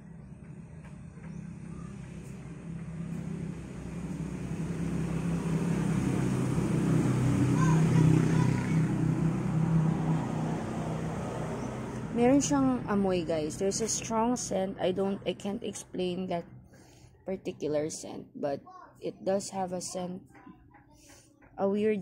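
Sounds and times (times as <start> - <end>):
vehicle engine: 0.0 - 18.0.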